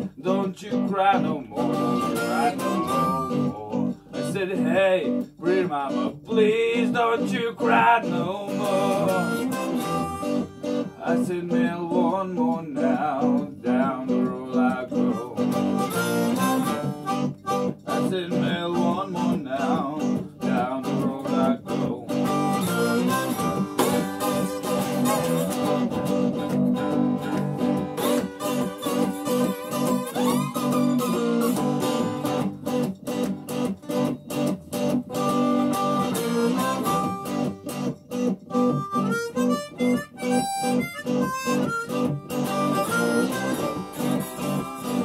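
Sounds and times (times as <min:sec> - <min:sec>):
guitars strumming: 0:00.0 - 0:45.0
harmonica playing: 0:01.3 - 0:04.3, 0:07.6 - 0:12.1, 0:14.9 - 0:19.9, 0:22.0 - 0:32.6, 0:35.1 - 0:45.0.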